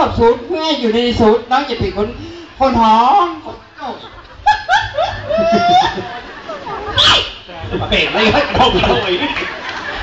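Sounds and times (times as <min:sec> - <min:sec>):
people talking: 0:05.5 - 0:09.8.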